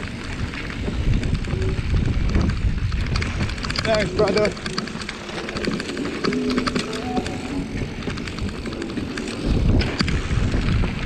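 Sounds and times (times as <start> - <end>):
bike clicks and rattles: 0.0 - 11.0
bike tyres on gravel trail: 0.0 - 11.0.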